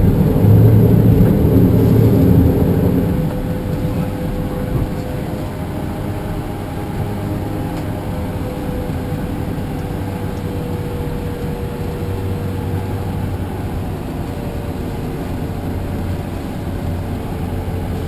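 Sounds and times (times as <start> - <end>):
airflow rushing: 0.0 - 18.0
jet engine hum: 0.0 - 18.0.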